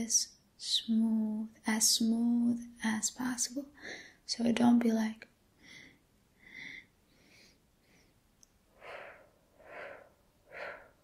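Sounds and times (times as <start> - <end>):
woman breathing in choppy puffs: 5.6 - 11.0.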